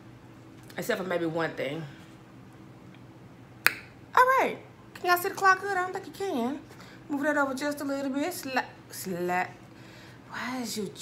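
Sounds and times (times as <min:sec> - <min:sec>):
finger snap: 0:02.9 - 0:04.0.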